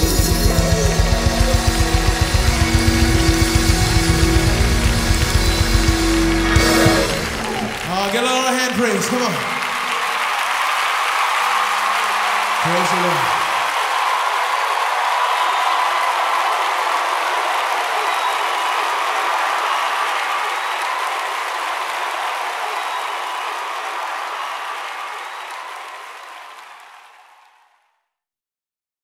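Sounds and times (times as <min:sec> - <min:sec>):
audience applauding and cheering: 0:00.0 - 0:27.9.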